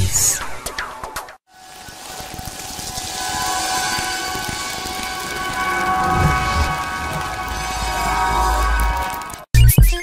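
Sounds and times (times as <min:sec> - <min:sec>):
whoosh of noise: 0:01.6 - 0:09.5.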